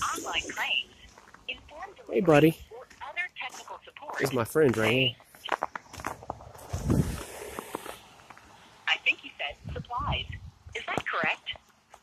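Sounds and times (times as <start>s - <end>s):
footsteps on packed snow: 0.0s - 8.6s.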